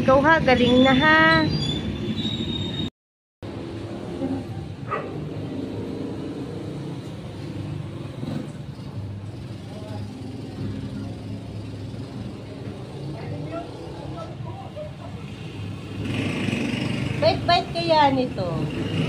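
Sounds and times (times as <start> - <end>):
passing traffic hum: 0.0 - 19.0.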